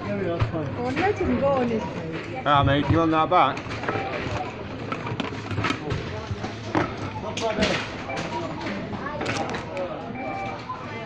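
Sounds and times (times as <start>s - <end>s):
noisy background: 0.0s - 11.0s.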